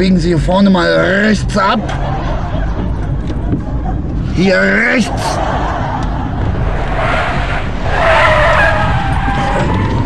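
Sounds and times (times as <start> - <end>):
road rumble: 0.0 - 10.0
car tyres squealing: 4.8 - 10.0.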